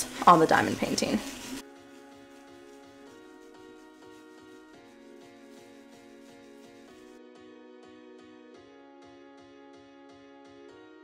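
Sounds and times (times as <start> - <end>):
woman speaking: 0.0 - 1.2
quiet background music: 0.0 - 11.0
toothbrush scrubbing: 0.1 - 7.2.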